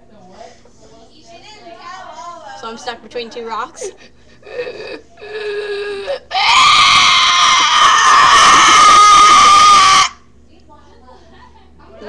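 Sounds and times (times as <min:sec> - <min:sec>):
girl screaming: 0:06.3 - 0:10.2.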